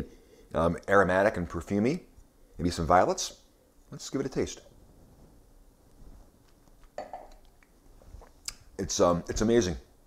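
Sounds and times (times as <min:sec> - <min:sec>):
wine glass clinking: 0:07.0 - 0:07.4.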